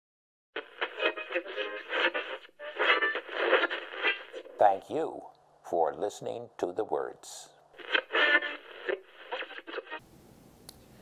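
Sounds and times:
tinny radio-filtered voice: 4.5s - 7.6s.

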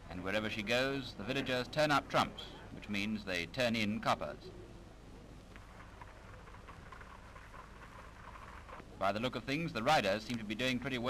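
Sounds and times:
low hum and hiss: 0.0s - 11.0s
film crackle and clicks: 5.5s - 8.9s.

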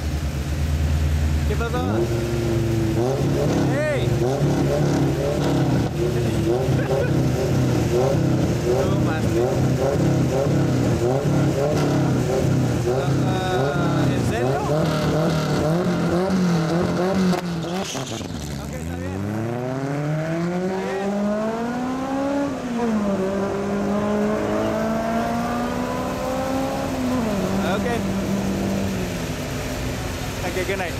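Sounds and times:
car engine accelerating: 0.0s - 30.9s
racing car engines revving: 0.0s - 30.9s.

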